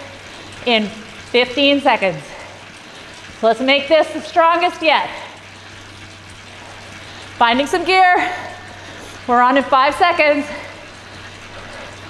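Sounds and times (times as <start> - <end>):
bike trainer whirring hiss: 0.0 - 12.0.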